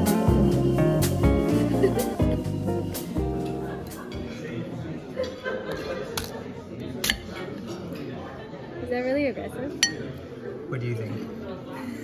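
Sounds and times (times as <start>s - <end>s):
metal spoon clinking on plate: 9.8s - 10.1s.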